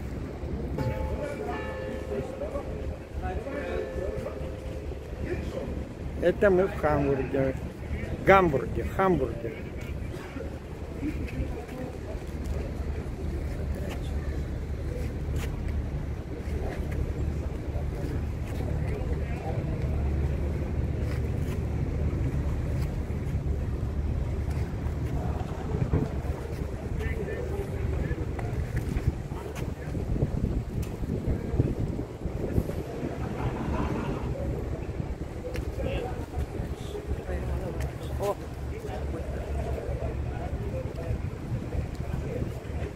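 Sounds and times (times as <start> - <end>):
faint voices: 0.0 - 42.9
wind buffeting microphone: 0.0 - 42.9.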